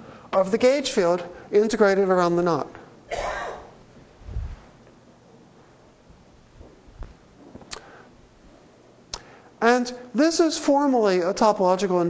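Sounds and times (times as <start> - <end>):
person clearing throat: 3.1 - 3.8.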